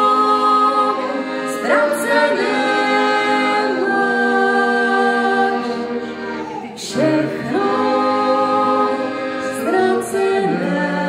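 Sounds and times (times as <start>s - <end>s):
man and woman singing: 0.0s - 5.8s, 6.8s - 11.0s
piano accordion: 0.0s - 11.0s.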